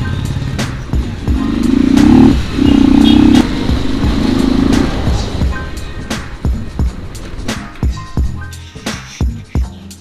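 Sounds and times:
background music with a beat: 0:00.0 - 0:10.0
motorcycle engine accelerating: 0:00.1 - 0:05.5.

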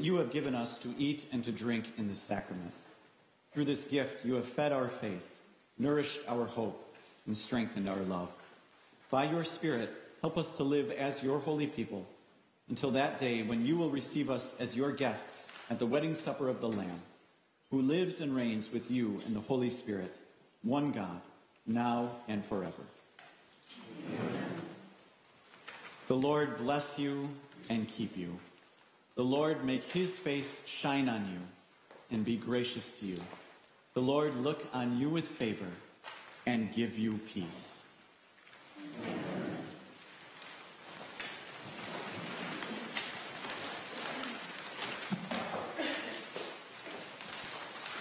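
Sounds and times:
congregation rustling: 0:00.0 - 0:48.0
congregation saying amen: 0:38.7 - 0:40.0.

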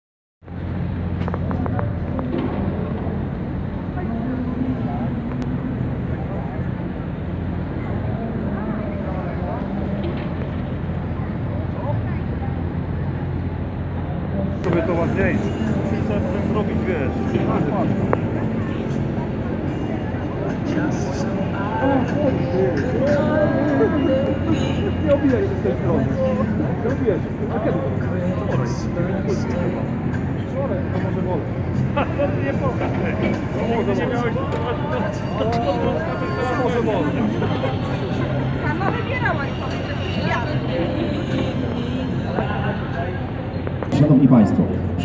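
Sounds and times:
people's voices: 0:00.5 - 0:45.0.

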